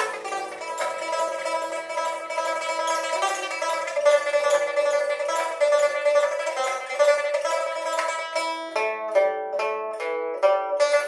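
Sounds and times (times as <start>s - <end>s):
plucked lute notes: 0.0s - 11.0s.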